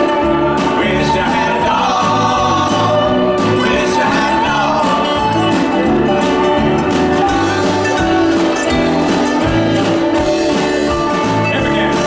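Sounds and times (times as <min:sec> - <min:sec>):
acoustic guitar: 0:00.0 - 0:12.0
drums: 0:00.0 - 0:12.0
mandolin: 0:00.0 - 0:12.0
upright bass: 0:00.0 - 0:12.0
voices singing in harmony: 0:00.0 - 0:12.0.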